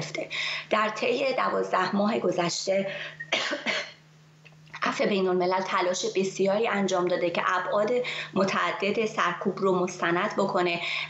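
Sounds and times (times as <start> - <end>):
woman coughing: 3.2 - 4.0.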